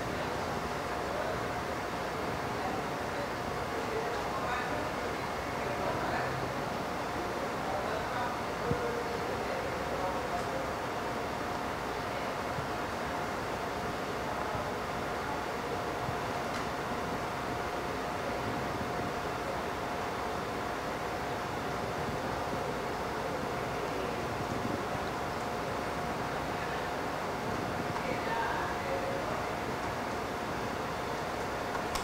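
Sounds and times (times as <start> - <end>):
mid-pitched hum: 0.0 - 32.0
room noise: 30.8 - 32.0.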